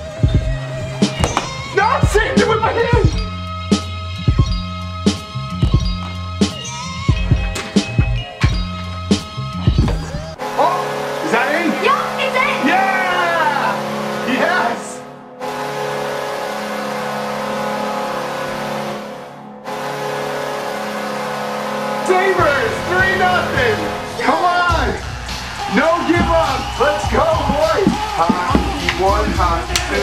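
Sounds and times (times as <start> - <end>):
arena goal horn blaring: 15.4 - 30.0
crowd cheering and whooping: 24.7 - 30.0.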